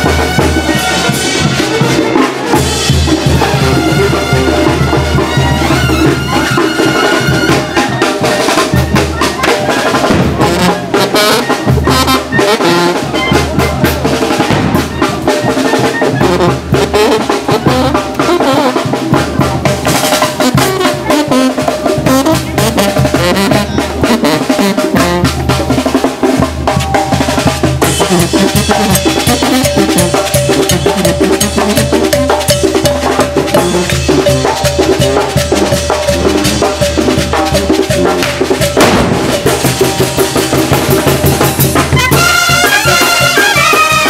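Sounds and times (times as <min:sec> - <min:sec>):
brass band playing: 0:00.0 - 0:44.0.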